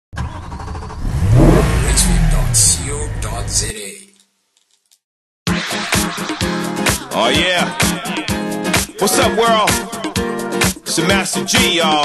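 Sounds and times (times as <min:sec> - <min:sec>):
car engine revving: 0:00.2 - 0:03.7.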